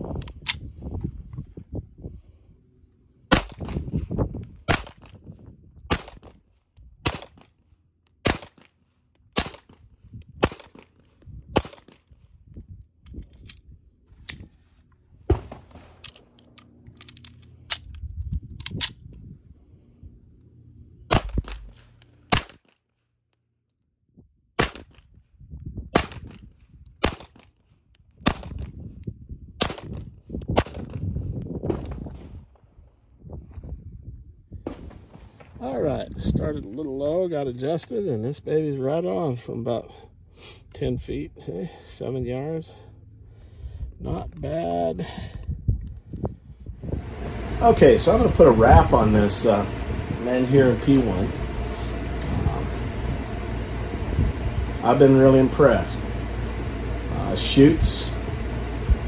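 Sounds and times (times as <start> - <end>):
pistol shots: 8.2 - 8.6.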